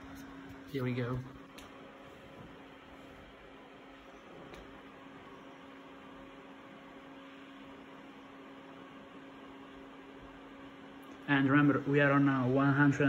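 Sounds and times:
computer fans and pump running: 0:00.0 - 0:13.0.

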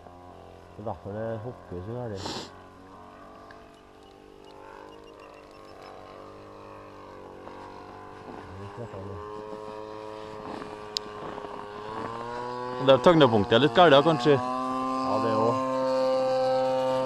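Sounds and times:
model plane engine drone: 0:00.0 - 0:17.0.

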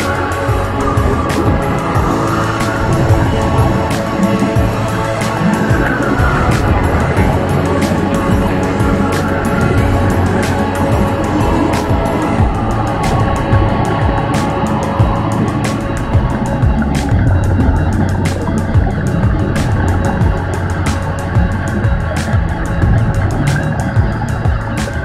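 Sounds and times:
background music with low drone: 0:00.0 - 0:25.0.

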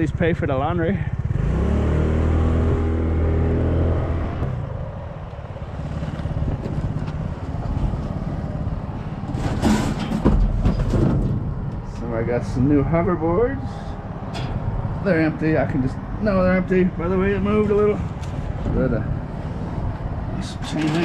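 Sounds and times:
vehicle engine accelerating: 0:01.1 - 0:08.9.

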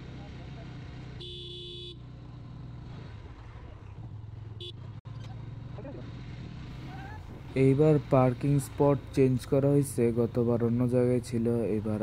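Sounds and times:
motorcycle engine at low revs: 0:00.0 - 0:12.0
vehicle horn beep: 0:01.2 - 0:02.0, 0:04.6 - 0:04.9.

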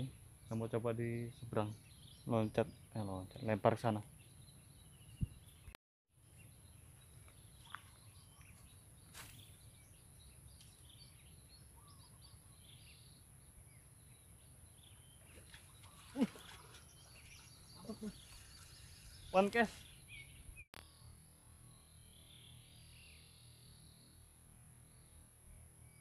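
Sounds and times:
bird chirps: 0:06.3 - 0:20.6.

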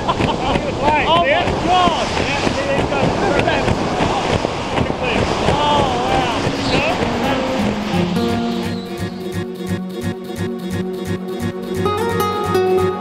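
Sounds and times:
wind rushing over microphone: 0:00.0 - 0:09.4.

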